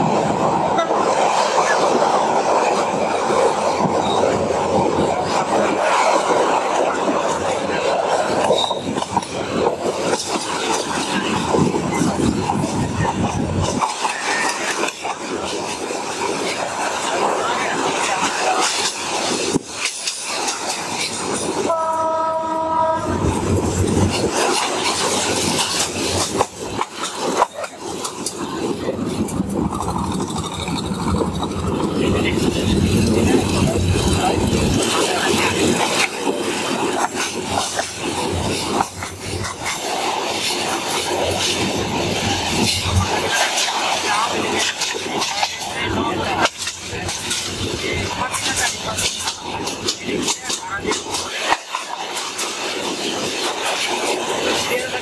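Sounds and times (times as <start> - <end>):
train wheels clattering: 0.0 - 55.0
train horn: 0.8 - 1.0, 21.7 - 23.4.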